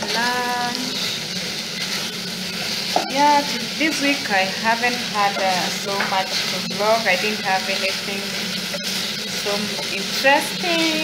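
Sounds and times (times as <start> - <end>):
food sizzling in a pan: 0.0 - 11.0.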